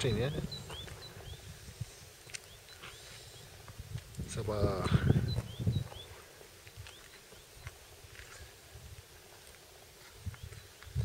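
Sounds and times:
bird chirping faintly: 0:00.0 - 0:01.6, 0:02.2 - 0:03.6, 0:04.6 - 0:07.9.

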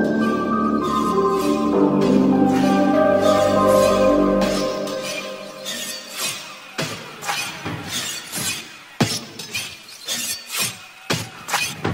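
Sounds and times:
faint music: 0:00.0 - 0:06.8.

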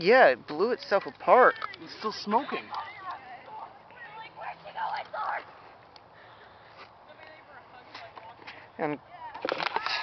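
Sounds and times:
man speaking: 0:00.0 - 0:02.8.

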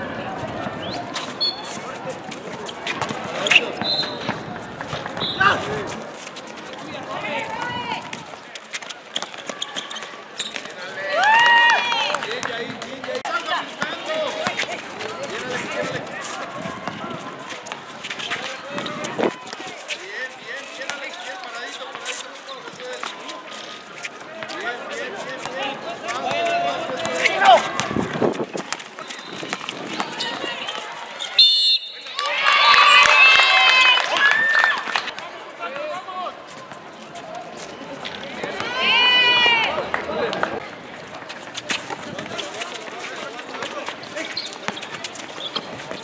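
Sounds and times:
crowd and court noise: 0:00.0 - 0:46.0
running footsteps on concrete: 0:00.4 - 0:31.2, 0:32.8 - 0:46.0.

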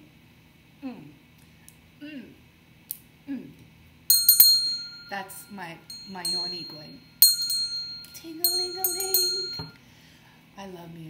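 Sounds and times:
brass hand bell ringing: 0:04.1 - 0:09.8.

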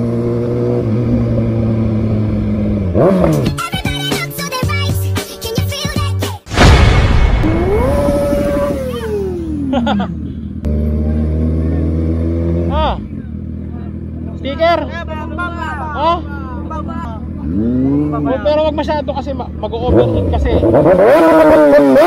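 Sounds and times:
motorcycle engine: 0:00.0 - 0:03.6, 0:06.5 - 0:22.0.

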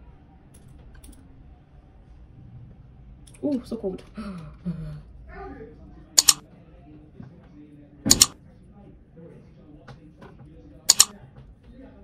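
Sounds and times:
faint small clicks: 0:06.2 - 0:06.4, 0:08.1 - 0:08.4, 0:10.9 - 0:11.1.

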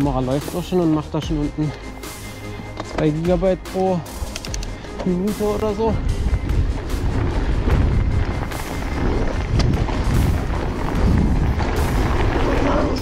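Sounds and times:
bike rattling and knocking: 0:02.8 - 0:13.0
bike tyres on dirt trail: 0:04.7 - 0:13.0
wind rumbling on microphone: 0:05.6 - 0:13.0.

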